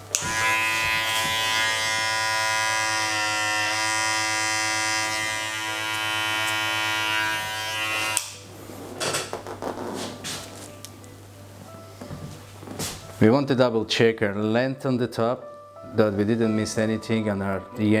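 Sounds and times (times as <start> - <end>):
electric hair clippers running: 0.1 - 8.4.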